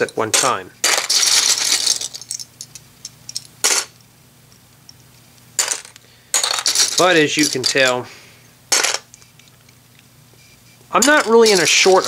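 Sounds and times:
plastic bricks clattering: 0.5 - 2.4.

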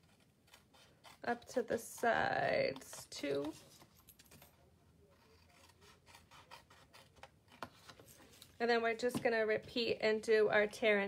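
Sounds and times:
paper scissors snipping cardstock: 0.0 - 3.8.

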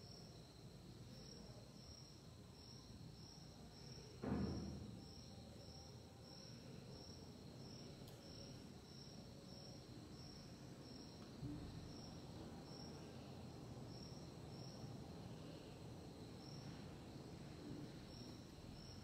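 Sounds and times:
soft thump: 4.2 - 4.9.

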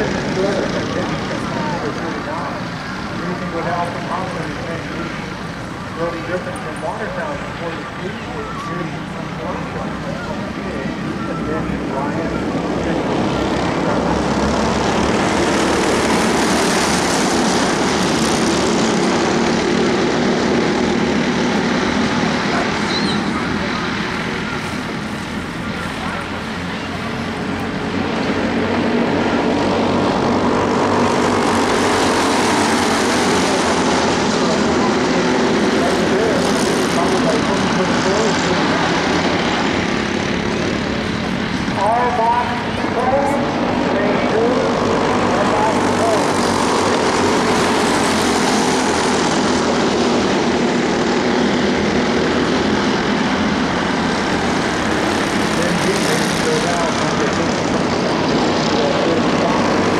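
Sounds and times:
kart engines buzzing drone: 0.0 - 59.9.

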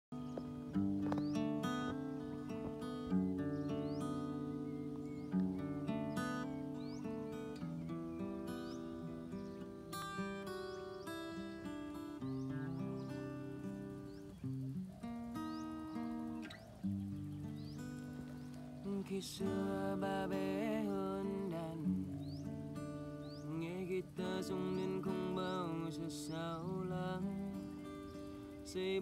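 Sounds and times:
acoustic guitar playing: 0.1 - 29.0.

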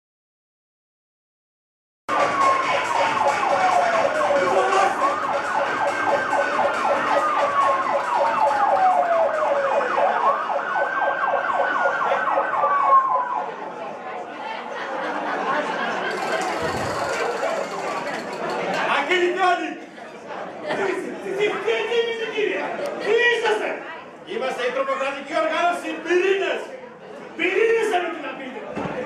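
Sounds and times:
siren wailing: 2.1 - 13.6.

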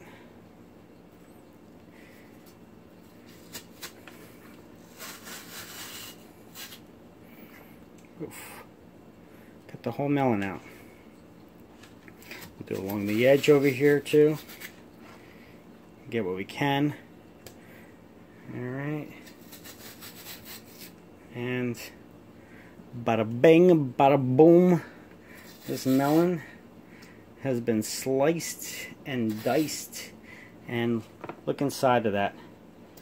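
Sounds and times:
fruit flesh scraping against rind: 3.0 - 6.9, 12.1 - 14.8, 19.2 - 21.0, 25.2 - 26.4, 29.2 - 30.0.

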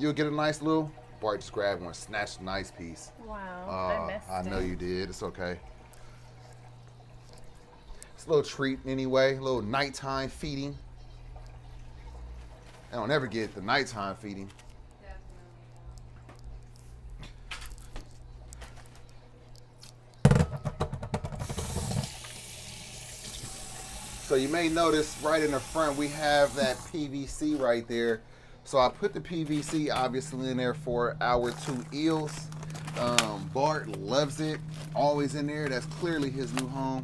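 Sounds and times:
water trickling: 0.0 - 15.2, 21.5 - 37.0
aquarium low hum: 0.0 - 20.3, 21.6 - 37.0
water rushing through aquarium filter: 21.4 - 27.5, 29.0 - 37.0.

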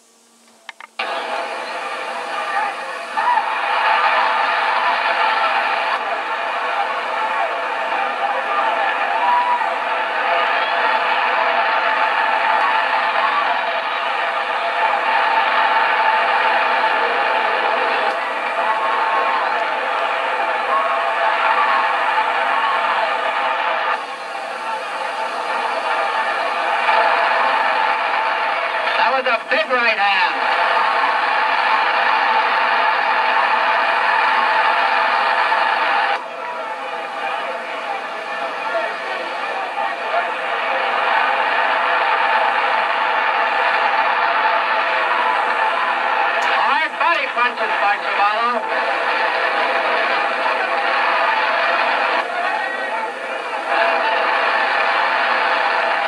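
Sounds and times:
crowd roaring through tv speaker: 1.0 - 56.0.

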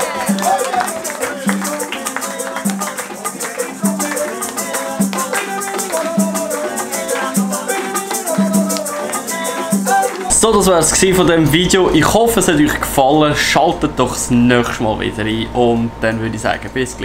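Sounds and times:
maracas shaking: 0.0 - 12.6
plucked guitar: 0.0 - 16.0.

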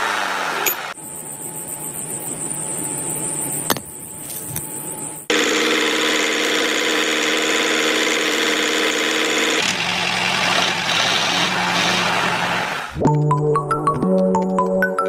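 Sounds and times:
small electric motor whining: 4.3 - 12.4.

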